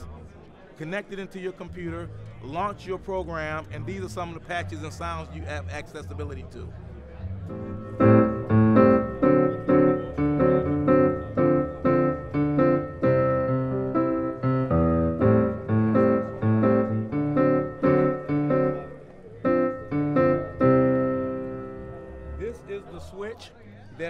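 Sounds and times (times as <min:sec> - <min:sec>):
piano chords over speakers: 0:06.8 - 0:23.0.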